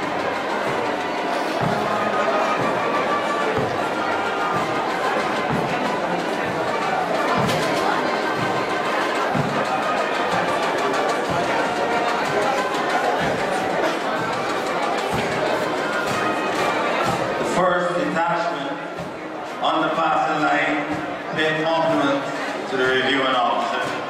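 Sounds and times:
crowd murmur and chatter: 0:00.0 - 0:24.0
military band playing a march: 0:00.0 - 0:24.0.

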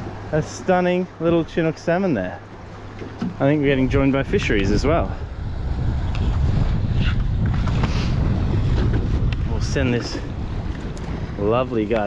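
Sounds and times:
water lapping around boat: 0:00.0 - 0:12.0
wind buffeting microphone: 0:02.5 - 0:12.0.

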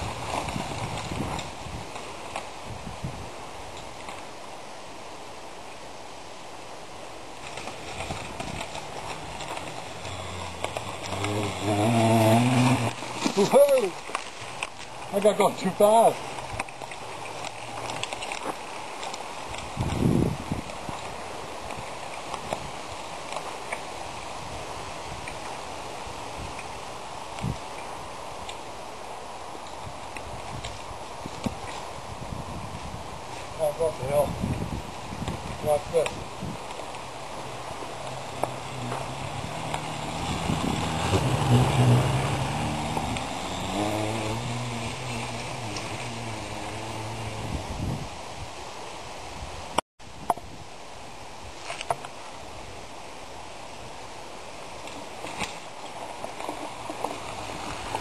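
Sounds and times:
wind noise on microphone: 0:00.0 - 0:04.0, 0:07.5 - 0:14.8, 0:19.4 - 0:23.1, 0:24.0 - 0:28.5, 0:29.7 - 0:54.1
bicycle rolling over gravel: 0:00.0 - 0:04.4, 0:07.1 - 0:28.7, 0:29.6 - 0:48.2, 0:55.0 - 0:58.0
electric motor whining: 0:08.7 - 0:13.3, 0:37.6 - 0:47.9.

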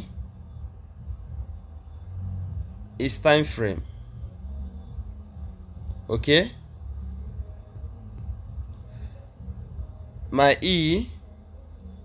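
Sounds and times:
faint high whine: 0:00.0 - 0:12.0
low background rumble: 0:00.0 - 0:12.0.

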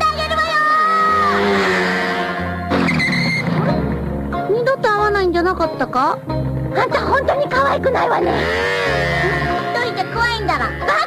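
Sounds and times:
background music: 0:00.0 - 0:11.0
cartoon motorcycle engine: 0:00.9 - 0:03.8.

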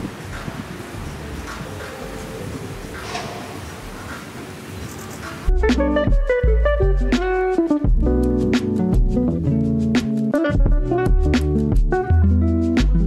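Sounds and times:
low background noise: 0:00.0 - 0:07.8
plucked acoustic guitar music: 0:05.2 - 0:13.0.

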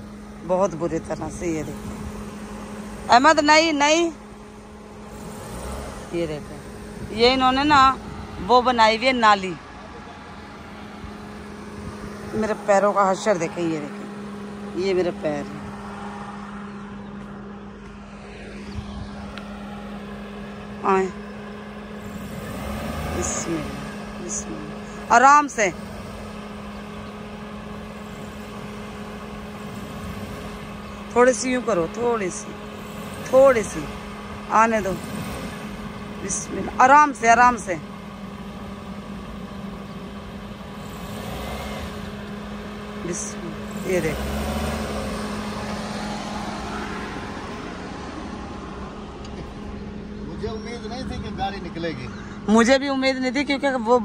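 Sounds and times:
car engine humming: 0:00.0 - 0:54.0.

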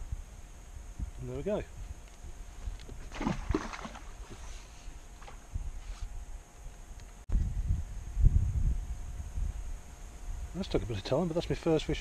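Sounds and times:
wind buffeting microphone: 0:07.3 - 0:11.0.

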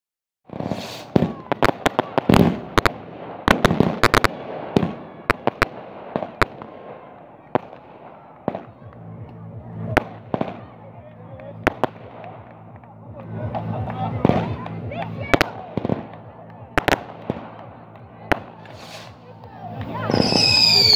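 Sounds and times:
firecrackers banging: 0:00.5 - 0:20.9.

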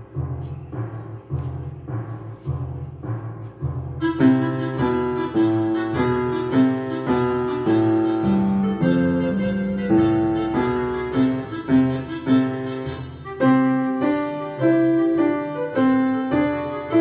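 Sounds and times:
upright piano playing: 0:04.0 - 0:17.0.

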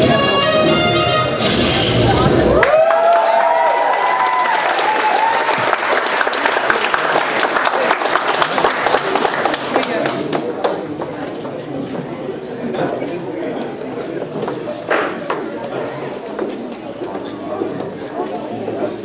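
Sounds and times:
audience cheering and whooping: 0:02.4 - 0:06.2
audience applauding: 0:02.5 - 0:10.9.

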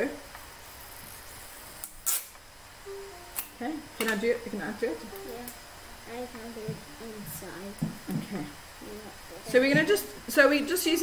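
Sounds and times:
tape tearing rasp: 0:02.0 - 0:02.3.

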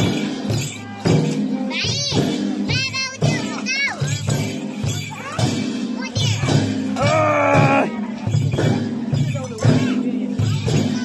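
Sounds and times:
crowd talking: 0:00.0 - 0:11.0
drums beating steady rhythm: 0:00.0 - 0:11.0
high-pitched voices calling out: 0:00.8 - 0:08.0.

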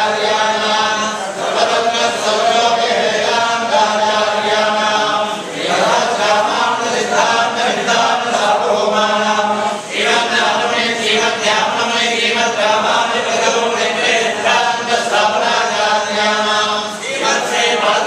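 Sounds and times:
men chanting in unison: 0:00.0 - 0:18.0.

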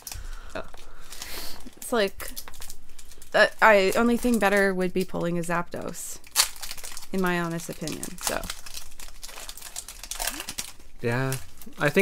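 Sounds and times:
foil wrapper crinkling: 0:00.0 - 0:12.0.

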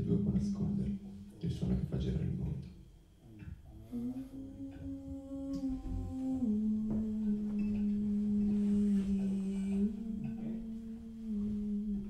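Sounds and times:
person humming low note: 0:00.0 - 0:01.8, 0:03.7 - 0:12.0.

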